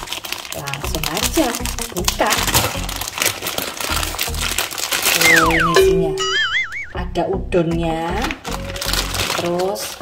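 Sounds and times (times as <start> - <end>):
plastic packet crinkling: 0.0 - 5.8, 8.2 - 10.0
music with steady beat: 5.2 - 8.2.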